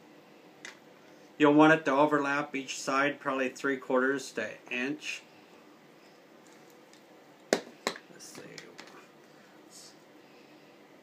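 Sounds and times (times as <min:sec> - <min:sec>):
faint handling and rustling: 0:05.9 - 0:10.2.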